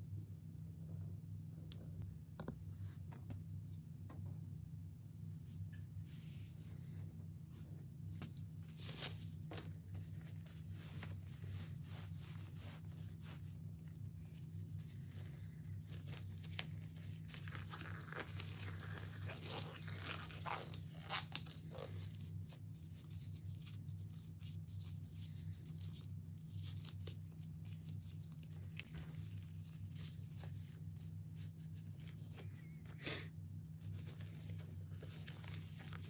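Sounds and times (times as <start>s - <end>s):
steady low hum: 0.0s - 36.0s
crinkling and rustling: 8.1s - 32.9s, 33.6s - 36.0s.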